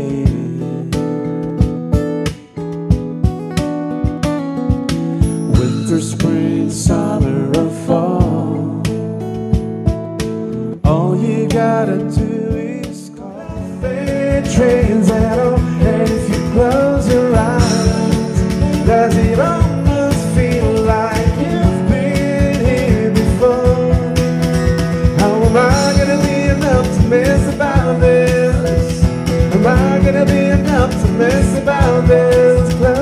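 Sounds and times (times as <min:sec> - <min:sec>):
acoustic guitar: 0:00.0 - 0:33.0
cajon beat: 0:00.0 - 0:33.0.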